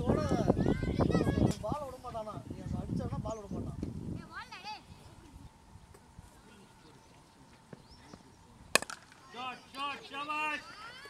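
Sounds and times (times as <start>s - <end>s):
cricket ball crack: 8.7s - 9.3s.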